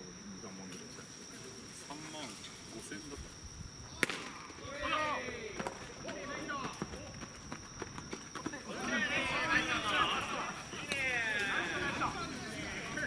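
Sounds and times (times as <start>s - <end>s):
crickets chirping: 0.0s - 13.0s
bat cracking ball: 4.0s - 4.6s
players shouting: 4.0s - 7.0s, 8.6s - 13.0s.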